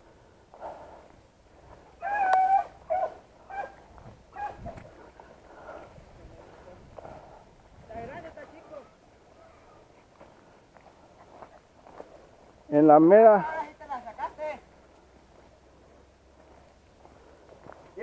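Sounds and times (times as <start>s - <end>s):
dog yelping: 2.0s - 4.8s.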